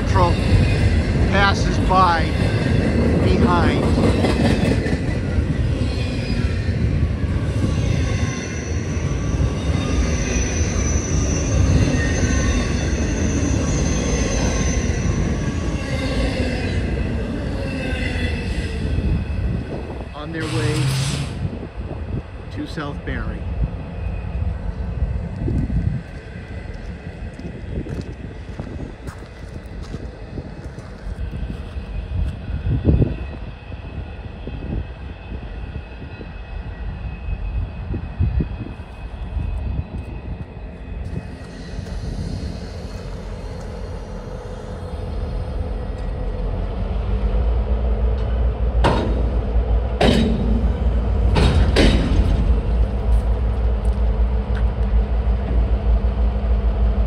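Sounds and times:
freight train cars rumbling: 0.0s - 57.0s.

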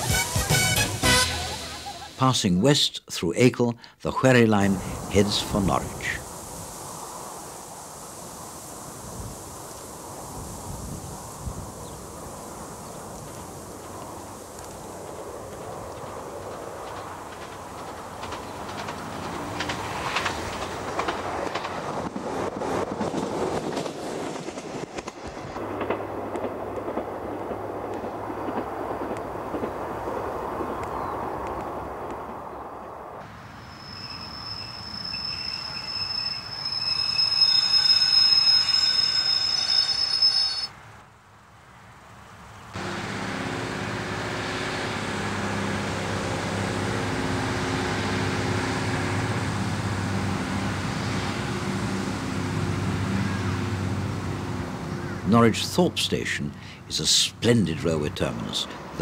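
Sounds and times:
train rumble with wheel clicks: 13.0s - 32.4s, 42.8s - 55.1s
high wheel squeal: 33.4s - 40.8s
low diesel engine drone: 42.8s - 55.0s.

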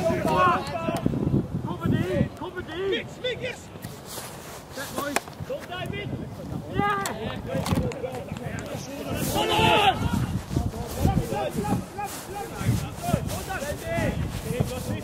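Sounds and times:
football players shouting: 0.0s - 1.0s, 8.7s - 14.2s.

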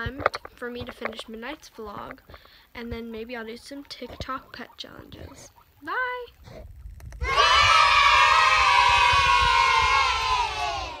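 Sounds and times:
children cheering: 7.2s - 11.0s.

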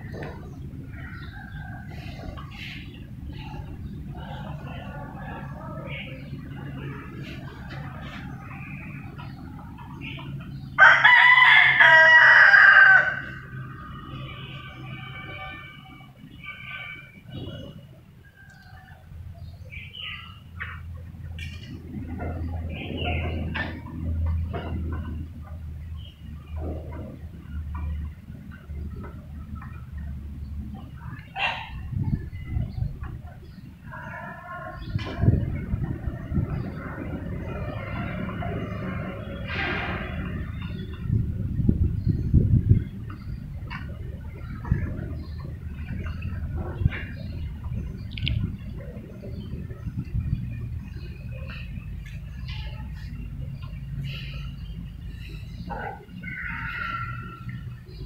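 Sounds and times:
chickens clucking: 0.0s - 14.4s, 17.2s - 58.0s
rooster crowing: 10.8s - 13.5s, 56.2s - 57.6s.

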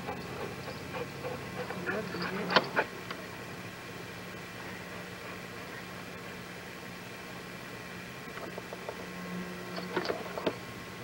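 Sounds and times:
videotape hiss: 0.0s - 11.0s.

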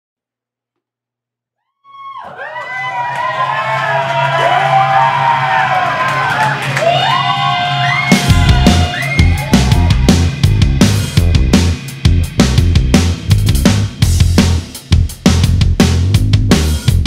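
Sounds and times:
steady low drone: 6.8s - 14.6s.

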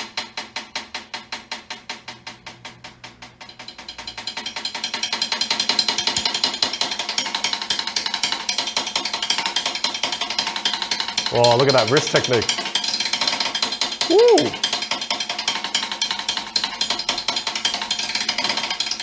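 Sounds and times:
snare drum strokes: 0.0s - 18.9s.

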